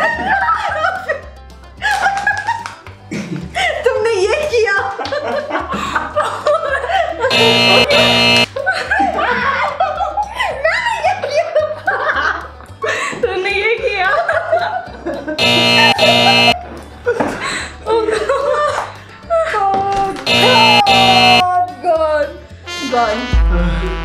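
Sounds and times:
people laughing hard: 0.0s - 3.8s, 5.0s - 7.3s, 7.9s - 13.2s, 14.0s - 15.4s, 16.6s - 19.6s
background music: 0.0s - 24.0s
loud held buzzing tone: 7.3s - 8.5s, 15.4s - 16.6s, 20.3s - 21.4s.

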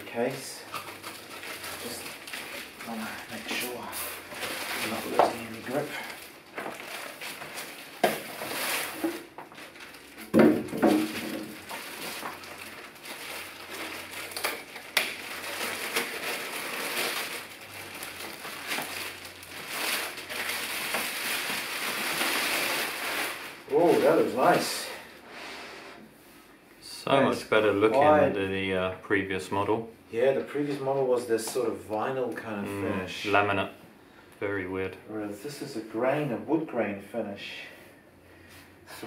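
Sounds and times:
plastic bag crinkling: 0.0s - 25.1s.

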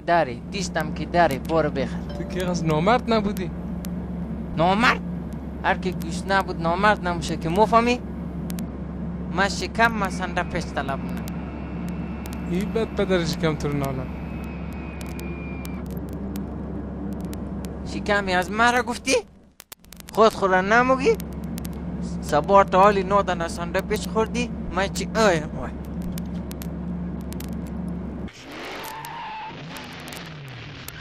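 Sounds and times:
car engine rumble: 0.0s - 31.0s
faint high tone: 2.0s - 2.6s.

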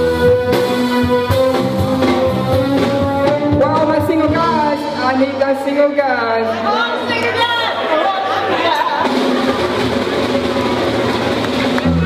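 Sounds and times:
crowd chatter: 0.0s - 12.0s
live band with voice: 0.0s - 12.0s.

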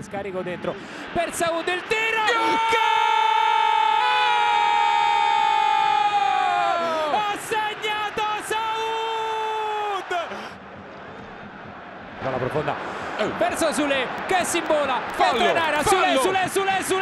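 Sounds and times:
stadium crowd cheering: 0.2s - 17.0s
commentator shouting: 1.1s - 4.3s, 6.5s - 10.3s, 13.4s - 17.0s.

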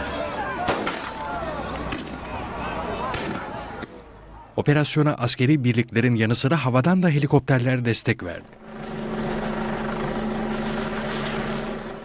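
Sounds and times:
helicopter flying overhead: 8.0s - 12.0s.

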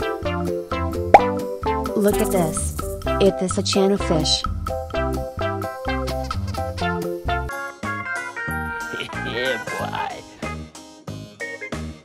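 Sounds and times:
bouncy plucked-string music: 1.1s - 1.4s
rising pop effect: 1.1s - 1.4s.

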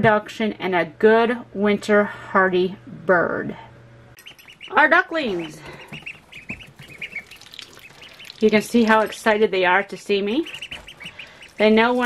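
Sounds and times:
ducklings peeping: 4.2s - 12.0s.

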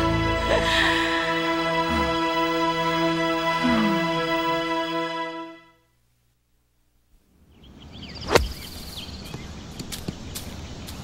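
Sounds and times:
faint bird chirps: 7.4s - 11.0s.

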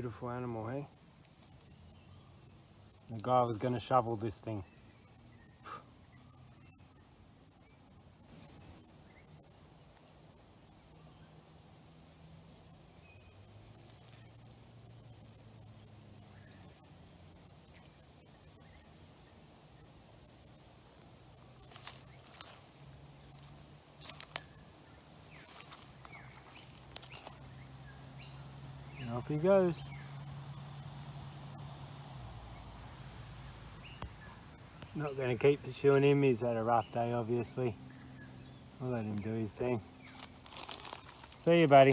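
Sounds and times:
low distant hum: 0.0s - 41.9s.

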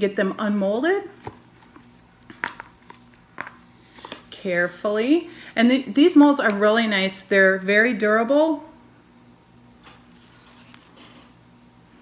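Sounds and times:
soft handling noise: 9.7s - 11.5s.

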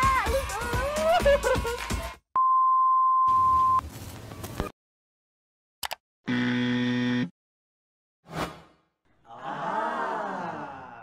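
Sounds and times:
low buzzer tone: 6.3s - 7.3s.

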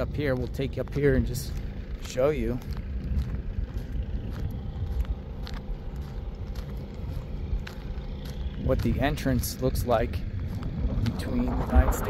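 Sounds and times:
car engine rumble: 0.0s - 12.0s
road noise: 0.0s - 12.0s.

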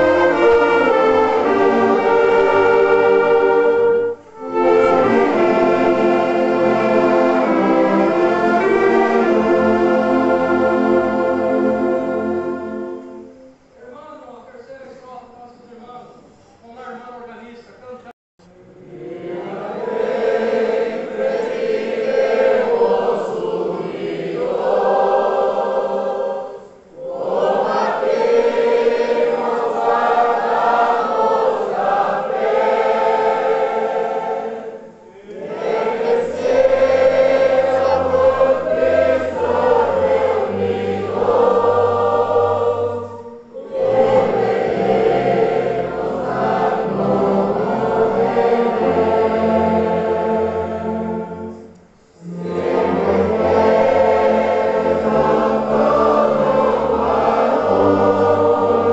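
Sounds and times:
congregation singing a hymn: 0.0s - 14.0s, 18.6s - 58.9s.

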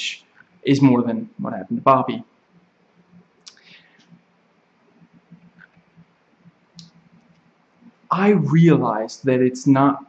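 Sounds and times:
faint small clicks: 3.4s - 4.2s.

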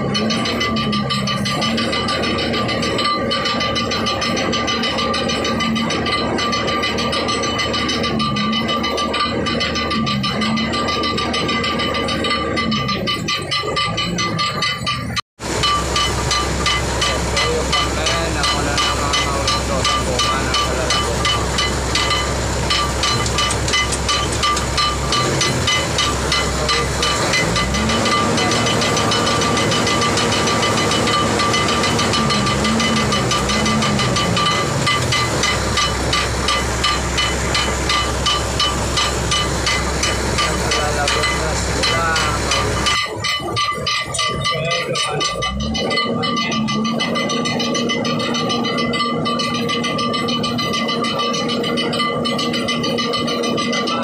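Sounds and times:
low engine note: 0.0s - 54.0s
crane machinery hissing: 15.4s - 53.3s.

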